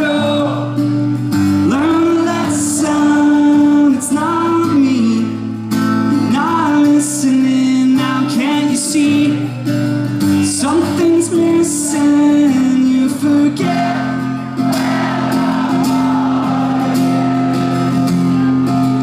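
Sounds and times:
man singing into microphone: 0.0 - 0.8, 1.6 - 9.7, 10.4 - 15.6
strummed acoustic guitar: 0.0 - 19.0.

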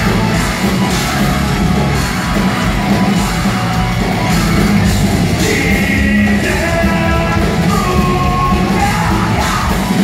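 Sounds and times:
live band playing heavy rock: 0.0 - 10.0.

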